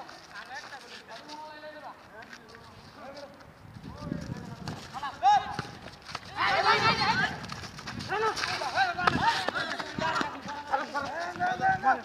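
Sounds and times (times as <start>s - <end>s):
feet and ball on pavement: 0.0s - 12.0s.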